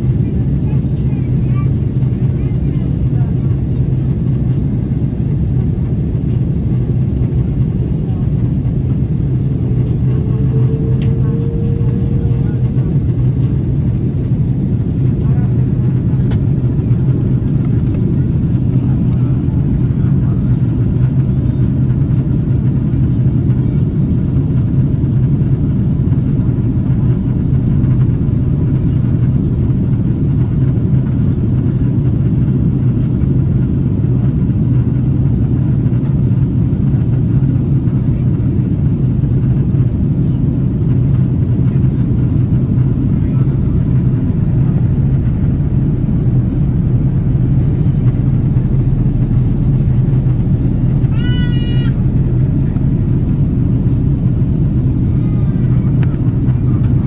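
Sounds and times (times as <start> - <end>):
airliner cabin drone: 0.0 - 57.0
jet engine noise: 0.0 - 57.0.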